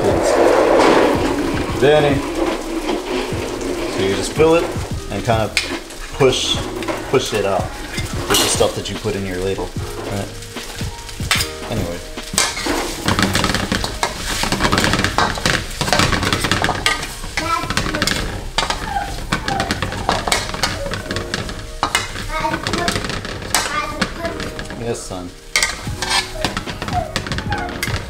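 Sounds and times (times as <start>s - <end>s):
noodles sizzling in a wok: 0.0s - 28.0s
metal utensils clinking on a wok: 3.5s - 24.9s, 25.5s - 28.0s.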